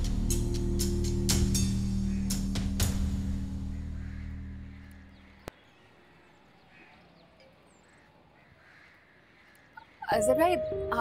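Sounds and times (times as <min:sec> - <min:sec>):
distant crows cawing: 0:01.3 - 0:10.3.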